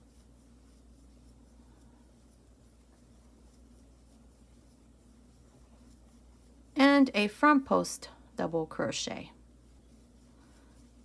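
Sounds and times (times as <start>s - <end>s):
yarn scratching on crochet hook: 0.0s - 7.9s, 9.0s - 11.0s
low steady hum: 0.0s - 11.0s.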